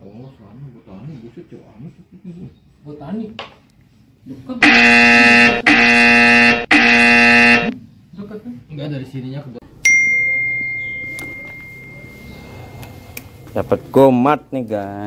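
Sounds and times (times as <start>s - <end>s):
phone alert buzzing tones: 4.6s - 7.7s
bright ding: 9.8s - 12.7s.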